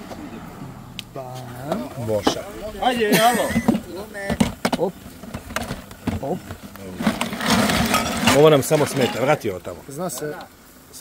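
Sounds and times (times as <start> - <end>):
scraping rattling rustle: 1.3 - 10.4.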